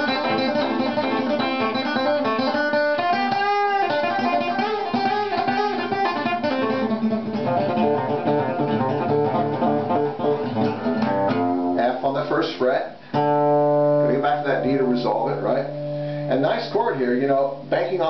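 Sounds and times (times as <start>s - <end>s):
acoustic guitar playing: 0.0s - 18.0s.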